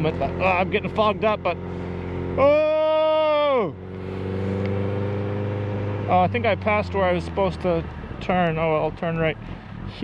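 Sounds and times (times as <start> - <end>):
motorcycle engine humming: 0.0 - 10.0.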